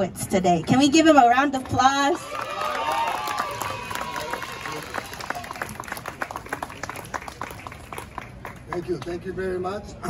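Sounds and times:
audience clapping: 2.3s - 9.2s.

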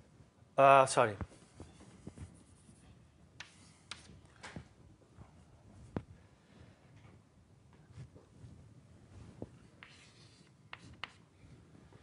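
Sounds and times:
man speaking: 0.6s - 1.3s
chalk tapping on blackboard: 3.4s - 4.1s, 9.8s - 11.2s.

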